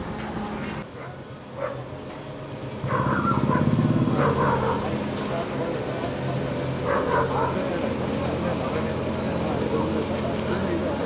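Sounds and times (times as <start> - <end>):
diesel engine running: 1.4 - 11.0
people's voices: 3.4 - 11.0.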